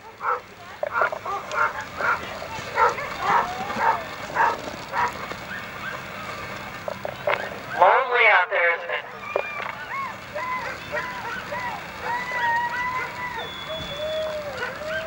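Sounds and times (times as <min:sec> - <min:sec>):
sled dogs barking: 0:00.0 - 0:15.0.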